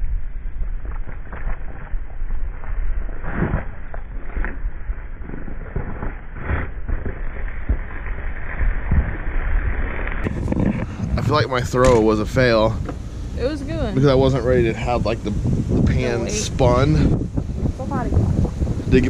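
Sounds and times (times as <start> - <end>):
muffled wind rumble on microphone: 0.0 - 19.0.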